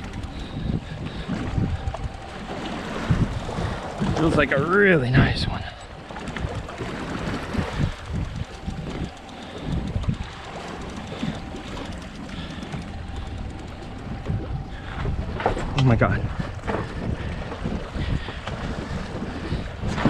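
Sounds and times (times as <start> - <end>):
water sloshing against boat hull: 0.0 - 20.0
wind buffeting microphone: 0.0 - 20.0.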